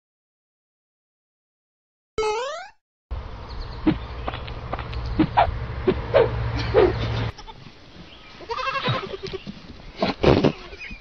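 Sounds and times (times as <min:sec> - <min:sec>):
goat kids bleating: 0:07.1 - 0:11.0.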